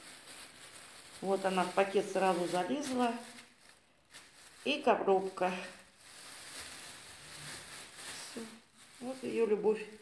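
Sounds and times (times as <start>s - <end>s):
plastic bag rustling: 0.0s - 10.0s.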